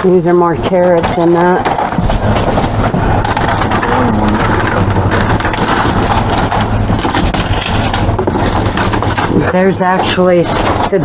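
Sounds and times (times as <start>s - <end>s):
low machine hum: 0.0s - 11.0s
plastic bags rustling: 0.6s - 11.0s.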